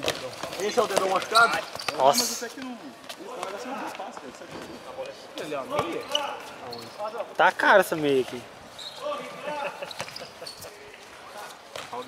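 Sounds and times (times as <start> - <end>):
background chatter of voices: 0.0 - 12.0.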